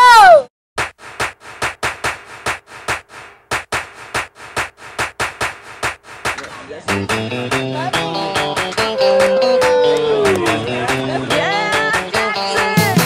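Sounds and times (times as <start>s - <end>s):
percussion rhythm: 0.8s - 13.0s.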